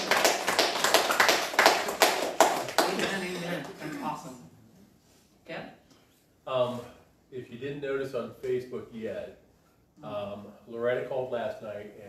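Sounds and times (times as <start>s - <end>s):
hands clapping: 0.0s - 4.2s.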